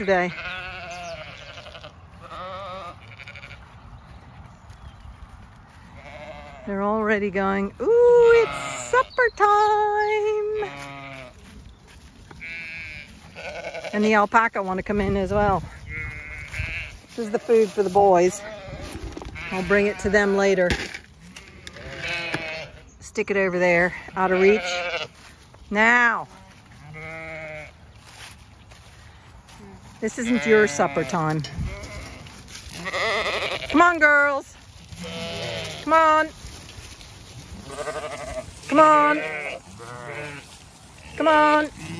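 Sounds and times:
flock of sheep calling: 0:00.0 - 0:03.8, 0:05.7 - 0:06.8, 0:08.2 - 0:14.4, 0:15.2 - 0:20.5, 0:21.2 - 0:22.9, 0:24.0 - 0:25.3, 0:26.3 - 0:27.7, 0:30.0 - 0:41.9
sheep bleating: 0:00.0 - 0:03.8, 0:06.0 - 0:07.0, 0:08.2 - 0:11.5, 0:12.4 - 0:14.3, 0:15.3 - 0:20.5, 0:21.2 - 0:22.9, 0:23.9 - 0:25.3, 0:26.0 - 0:27.7, 0:30.0 - 0:36.3, 0:37.5 - 0:41.9.

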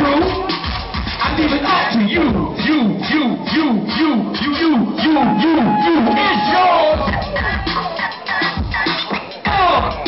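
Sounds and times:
hip hop beat over loudspeakers: 0:00.0 - 0:10.0
high held tone: 0:05.0 - 0:08.2.

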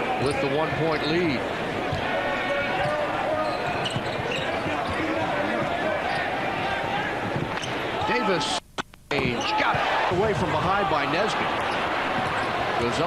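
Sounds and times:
arena crowd voices: 0:00.0 - 0:08.5, 0:09.2 - 0:13.0.

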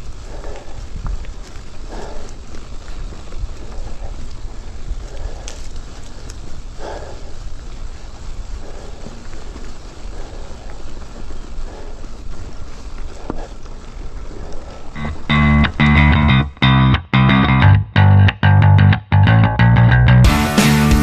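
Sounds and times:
bike rolling on dirt trail: 0:00.0 - 0:16.8
distorted rock guitar music: 0:15.0 - 0:21.0.

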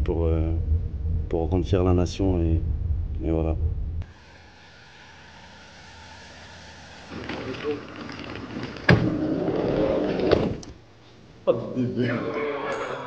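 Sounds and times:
steady rush of car: 0:04.0 - 0:10.7
voices: 0:04.2 - 0:10.7, 0:11.5 - 0:13.0.

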